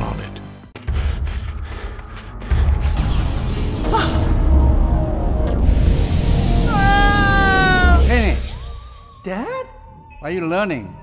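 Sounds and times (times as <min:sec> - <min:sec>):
deep rumbling music: 0:00.0 - 0:10.2
man screaming high: 0:06.7 - 0:08.1.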